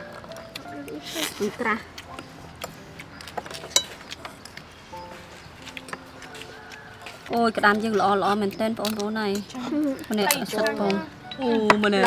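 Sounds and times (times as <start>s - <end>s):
spoons clinking on plates: 2.2s - 4.6s.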